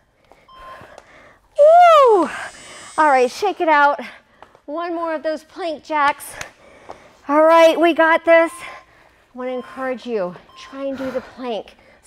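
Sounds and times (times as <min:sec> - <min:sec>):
woman whooping cry: 0:01.6 - 0:02.4.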